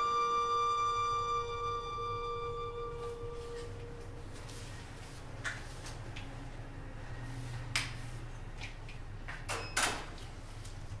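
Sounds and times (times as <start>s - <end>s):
low steady hum: 0.0s - 9.8s.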